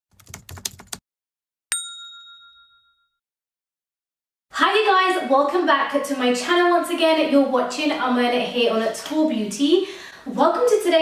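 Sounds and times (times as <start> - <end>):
bright chime ding: 1.7 - 3.2.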